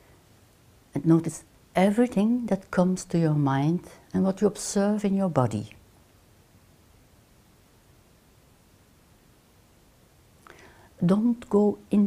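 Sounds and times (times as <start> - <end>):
woman breathing in: 10.4 - 11.0.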